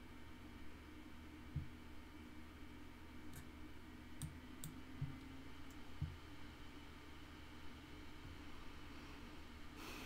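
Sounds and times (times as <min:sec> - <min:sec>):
low room hum: 0:00.0 - 0:10.0
computer mouse clicks: 0:04.2 - 0:04.8.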